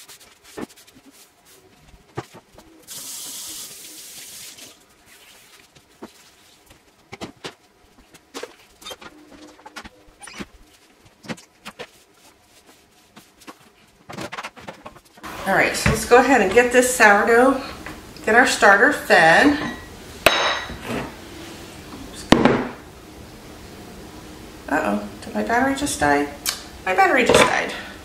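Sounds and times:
steady hiss: 2.8s - 5.2s
items knocking on countertop: 22.3s - 22.8s.

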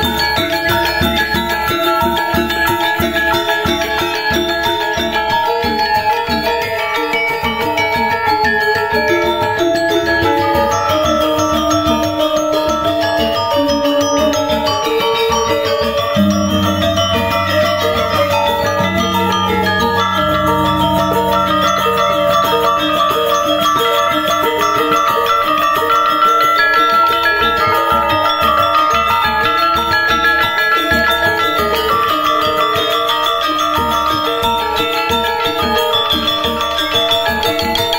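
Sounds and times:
gamelan ensemble playing: 0.0s - 37.9s
low deep tone: 16.2s - 24.4s.

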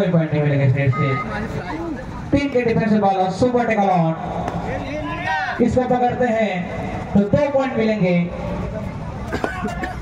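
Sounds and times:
short steady beep: 0.8s - 1.5s.

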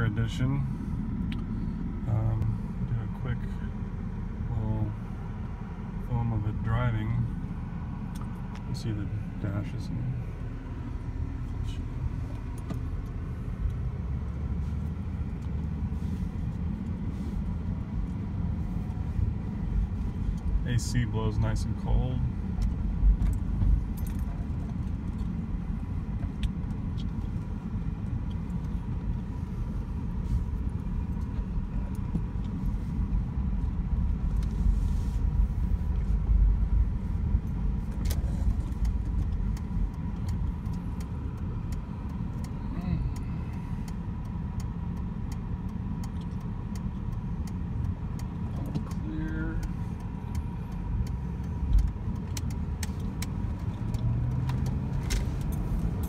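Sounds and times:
engine and tyres rumbling: 0.0s - 56.0s.

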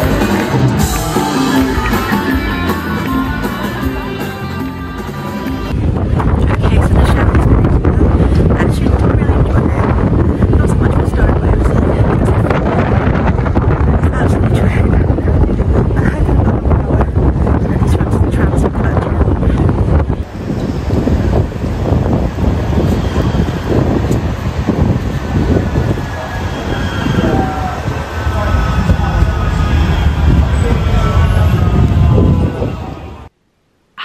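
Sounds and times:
tram rail rumble: 0.0s - 33.3s
wind buffeting microphone: 5.6s - 33.3s
wheels squealing: 20.3s - 33.2s.

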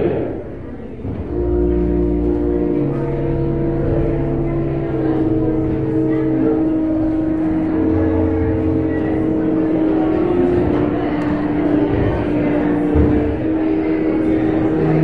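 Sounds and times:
church organ chords: 0.0s - 15.0s.

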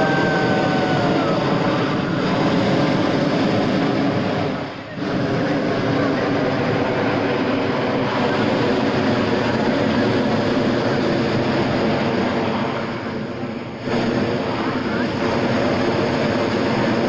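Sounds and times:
propane burner firing: 0.0s - 17.0s.

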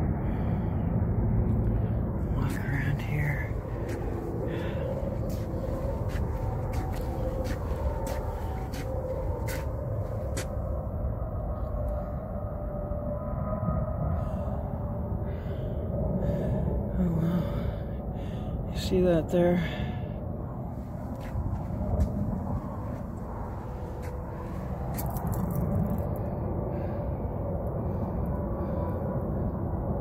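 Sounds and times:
wind rumble on microphone: 0.0s - 30.0s.

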